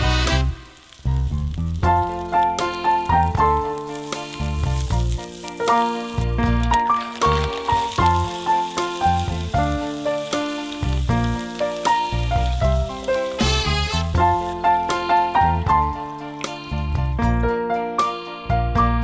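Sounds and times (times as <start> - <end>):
faint sizzling in oil: 0.0 - 17.2.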